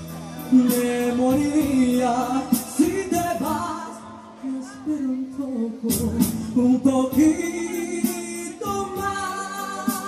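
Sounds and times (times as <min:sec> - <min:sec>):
karaoke backing track: 0:00.0 - 0:10.0
man singing into a microphone: 0:00.0 - 0:10.0.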